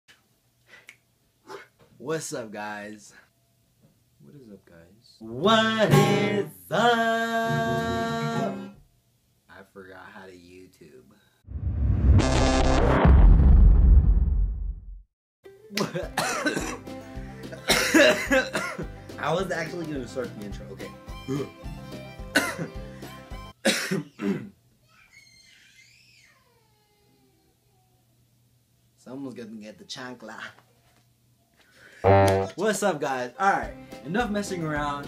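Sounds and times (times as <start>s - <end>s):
background music: 15.5s - 23.6s, 33.5s - 35.0s
young man laughing: 15.7s - 16.7s, 17.3s - 18.9s.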